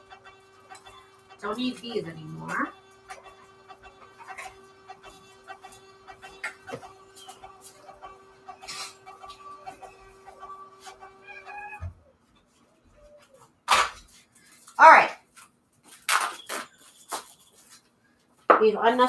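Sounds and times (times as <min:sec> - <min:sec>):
label printer whirring and clicking: 0:00.0 - 0:11.8.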